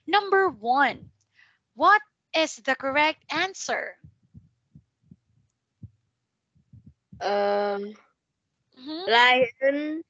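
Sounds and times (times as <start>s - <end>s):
faint low dull thumps: 0.0s - 1.1s, 3.8s - 7.6s.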